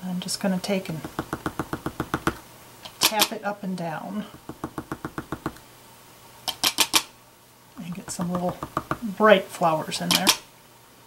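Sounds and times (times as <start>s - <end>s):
stamp tapping: 1.0s - 2.4s, 4.3s - 5.6s, 7.8s - 9.1s.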